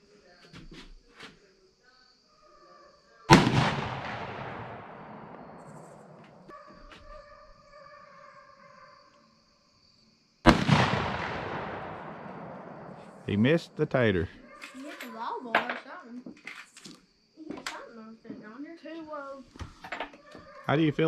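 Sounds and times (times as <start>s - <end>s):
rifle shots with rolling echo: 3.3s - 6.4s, 10.5s - 13.3s.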